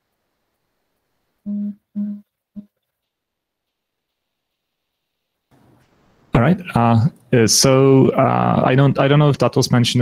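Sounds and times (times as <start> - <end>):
person humming: 1.4 - 2.8.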